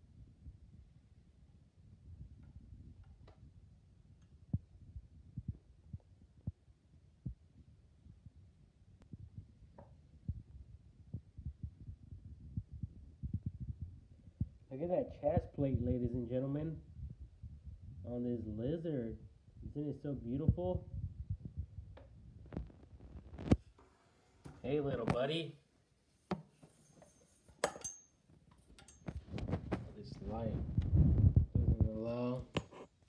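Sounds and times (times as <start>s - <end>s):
faint low rumble: 0.0s - 23.7s, 29.1s - 32.6s
soft low thumps: 4.4s - 23.6s, 29.1s - 32.6s.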